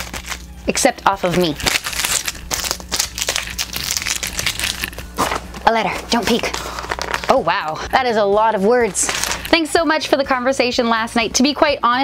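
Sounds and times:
adhesive tape crinkling: 0.0 - 0.5, 1.2 - 7.8, 8.8 - 9.6.

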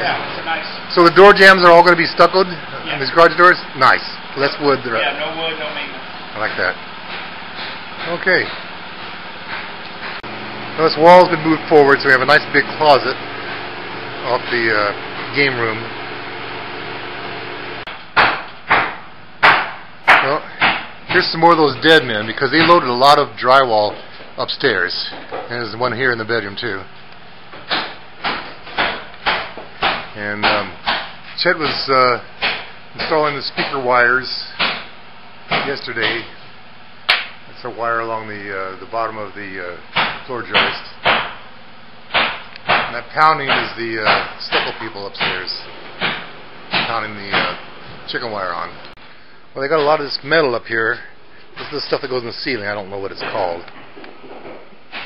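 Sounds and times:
steady background hum: 0.0 - 55.0
hammer blows: 9.4 - 23.2
hammer striking nails: 17.9 - 21.4, 27.7 - 33.8, 34.6 - 34.9, 39.9 - 41.4, 42.1 - 47.6.

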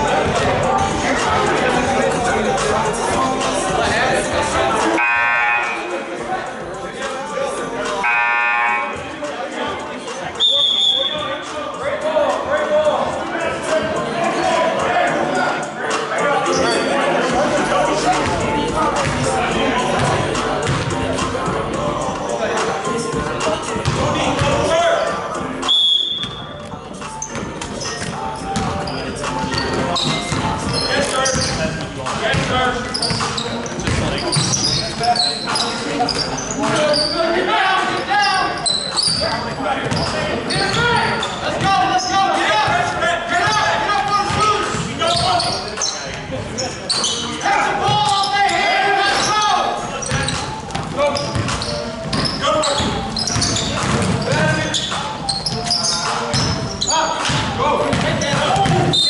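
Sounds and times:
basketball bouncing: 20.0 - 21.0, 27.3 - 34.7, 50.1 - 54.6, 57.3 - 59.0.

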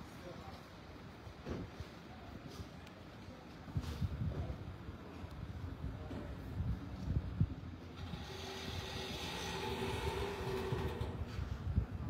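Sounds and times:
wind buffeting microphone: 3.7 - 12.0.

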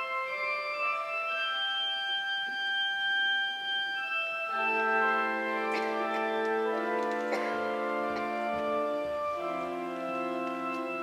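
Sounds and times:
pipe organ holding high note: 0.0 - 11.0.

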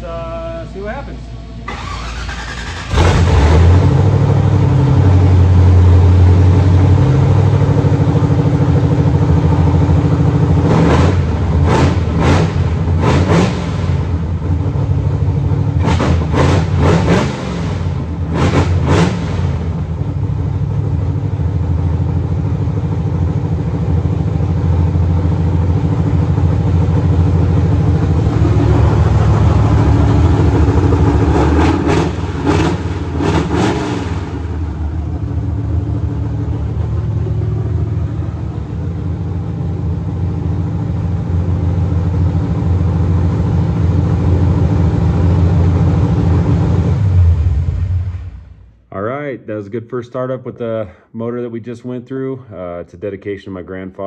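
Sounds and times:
car engine idling: 0.0 - 49.2
engine revving in blips: 1.6 - 7.9, 9.3 - 20.3, 26.2 - 38.6.

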